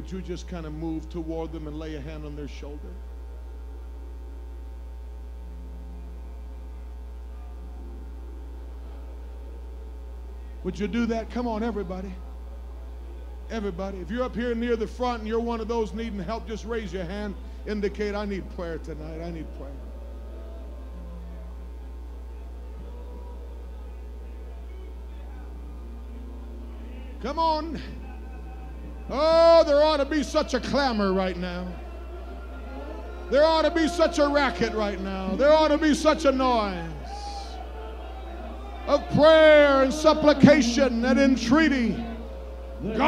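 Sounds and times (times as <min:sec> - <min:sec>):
low electrical mains hum: 0:00.0 - 0:43.0.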